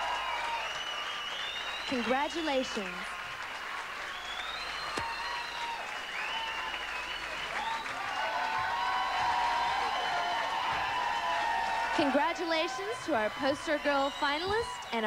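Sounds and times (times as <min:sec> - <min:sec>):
audience applauding and cheering: 0:00.0 - 0:15.0.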